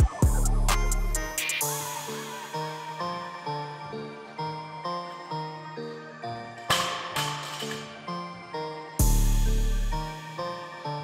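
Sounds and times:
plucked background music: 0.0s - 11.0s
barbell crashing on gym floor: 6.7s - 7.9s.

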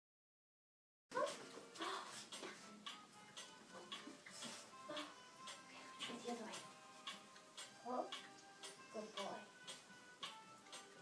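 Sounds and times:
faint music: 1.1s - 11.0s.

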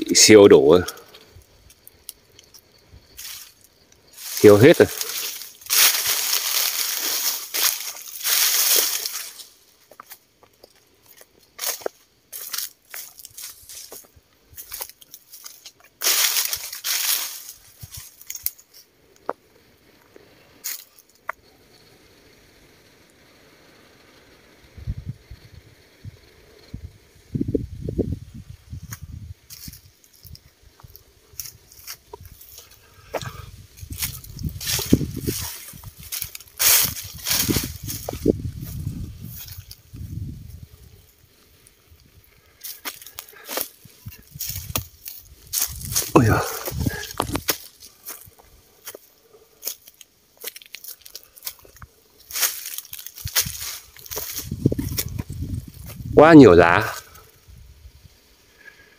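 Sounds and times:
dry leaves crunching underfoot: 0.0s - 18.9s, 20.6s - 21.0s, 28.8s - 57.1s
twigs snapping: 0.8s - 10.1s, 14.6s - 19.3s, 42.6s - 49.0s, 49.6s - 55.3s
wind buffeting microphone: 24.7s - 32.5s, 33.1s - 41.1s, 43.8s - 47.5s, 53.2s - 56.2s.

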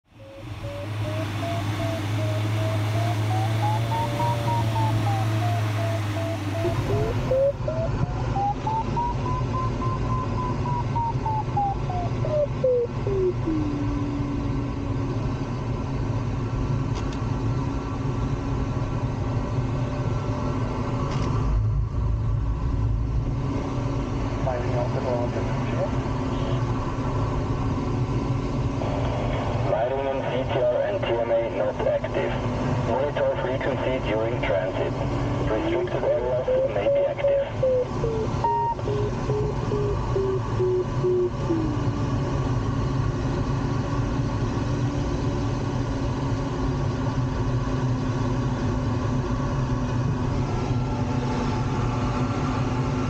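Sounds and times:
variometer beeping: 0.1s - 14.6s, 35.5s - 42.2s
continuous low tone: 0.1s - 53.0s.

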